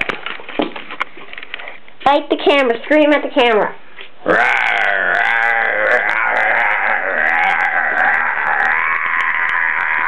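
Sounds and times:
man screaming raspily: 0:04.3 - 0:10.0.

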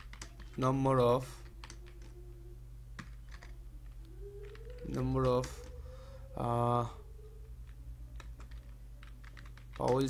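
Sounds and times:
computer keyboard keystrokes: 0:00.0 - 0:00.6, 0:01.4 - 0:02.1, 0:03.0 - 0:05.7, 0:07.6 - 0:10.0
faint steady hum: 0:00.0 - 0:10.0.

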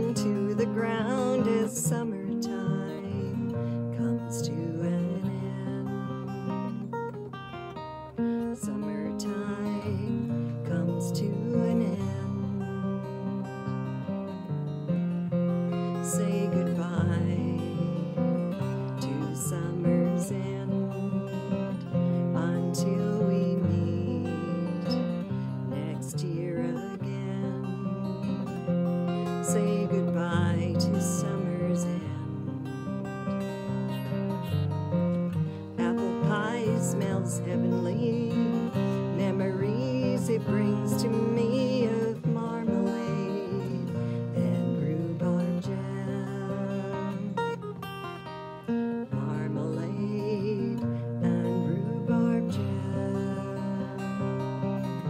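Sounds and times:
person singing: 0:00.0 - 0:14.5, 0:15.4 - 0:55.0
acoustic guitar playing: 0:00.0 - 0:55.0.

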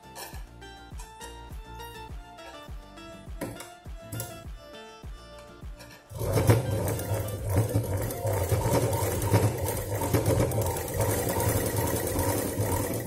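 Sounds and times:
sewing machine stitching: 0:06.1 - 0:13.0.

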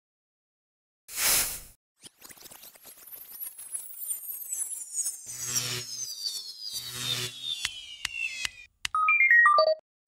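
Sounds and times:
sharp electronic clicks: 0:04.6 - 0:09.8.

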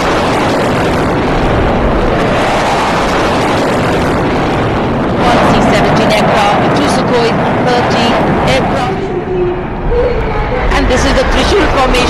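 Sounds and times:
jet roar: 0:00.0 - 0:12.0.

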